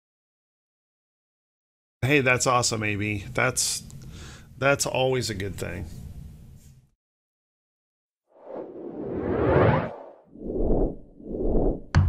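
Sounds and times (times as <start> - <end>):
whooshes: 8.4 - 11.9.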